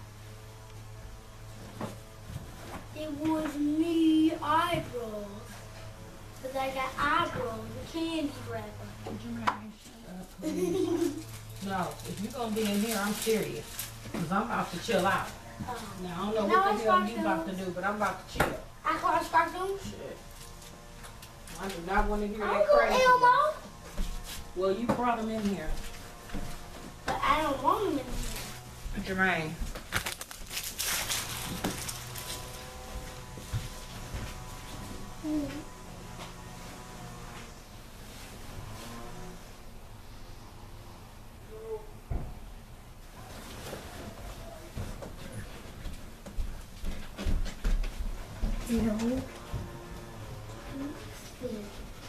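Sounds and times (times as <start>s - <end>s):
rustling and scuffing: 22.5s - 24.6s, 25.2s - 39.2s, 43.2s - 52.0s.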